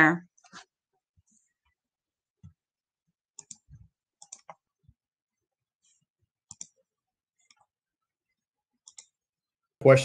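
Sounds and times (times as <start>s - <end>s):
computer mouse clicks: 3.4s - 4.7s, 6.5s - 6.8s, 8.8s - 9.2s.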